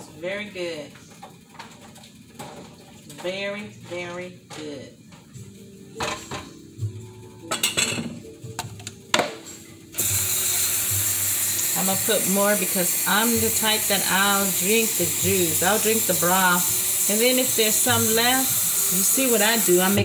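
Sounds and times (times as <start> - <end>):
loud steady hiss: 9.8 - 20.0.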